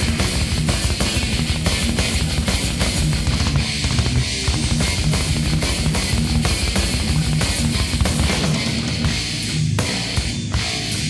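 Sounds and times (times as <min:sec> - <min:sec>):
distorted electric guitars: 0:00.0 - 0:11.0
fast dense drumming: 0:00.0 - 0:11.0.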